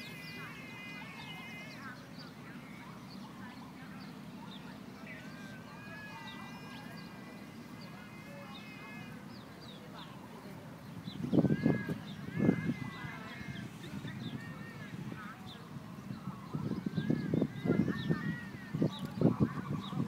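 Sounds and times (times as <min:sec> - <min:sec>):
ducklings peeping: 0:00.0 - 0:20.0.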